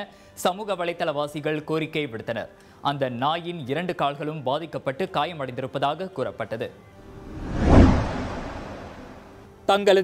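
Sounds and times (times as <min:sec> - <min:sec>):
whoosh transition effect: 0:07.0 - 0:09.4.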